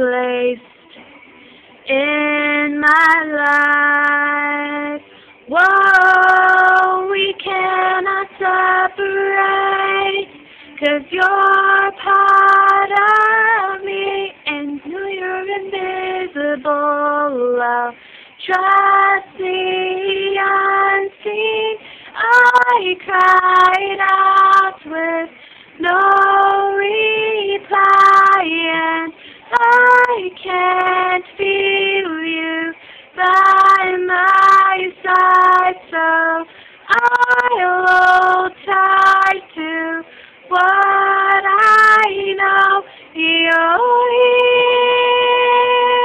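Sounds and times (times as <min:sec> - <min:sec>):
woman singing a ballad: 0:00.0 - 0:00.8, 0:01.8 - 0:46.0
singer breathing: 0:00.9 - 0:01.8, 0:05.0 - 0:05.4, 0:10.4 - 0:10.8, 0:18.0 - 0:18.4, 0:21.8 - 0:22.2, 0:25.3 - 0:25.8, 0:29.1 - 0:29.5, 0:32.8 - 0:33.2, 0:36.5 - 0:36.9, 0:40.0 - 0:40.5, 0:42.8 - 0:43.1.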